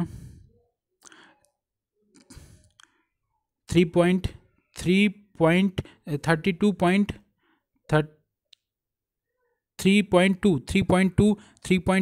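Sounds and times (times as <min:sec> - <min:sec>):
man speaking: 0:03.7 - 0:07.3, 0:07.9 - 0:08.2, 0:09.8 - 0:12.0.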